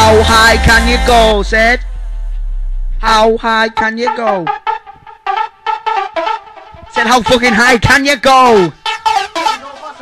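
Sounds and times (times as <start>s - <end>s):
rave dance track: 0.0s - 10.0s.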